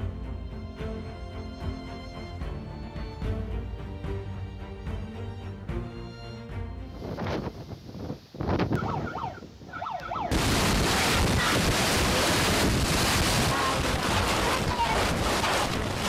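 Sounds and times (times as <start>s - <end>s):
wind gusting on microphone: 7.0s - 16.0s
floodwater rushing: 8.8s - 16.0s.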